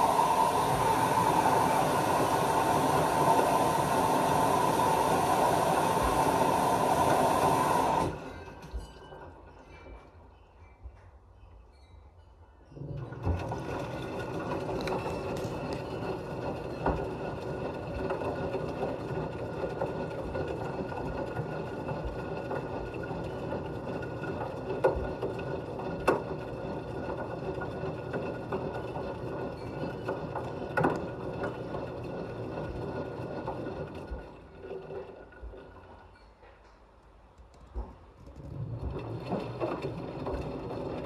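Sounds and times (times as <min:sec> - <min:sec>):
washing machine motor hum: 0:00.0 - 0:08.9, 0:12.8 - 0:36.2, 0:37.7 - 0:41.0.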